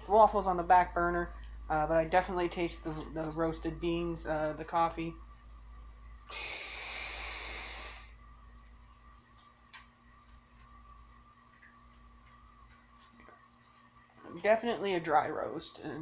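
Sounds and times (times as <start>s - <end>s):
breathy hiss of air: 6.2s - 8.2s.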